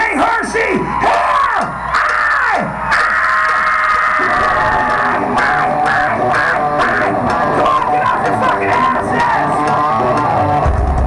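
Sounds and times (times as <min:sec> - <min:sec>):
live rock band playing loud: 0:03.9 - 0:11.0.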